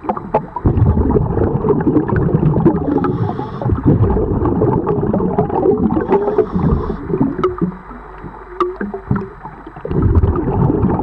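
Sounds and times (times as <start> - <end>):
regulator bubbles gurgling: 0.0 - 11.0
scrubbing underwater: 0.0 - 11.0.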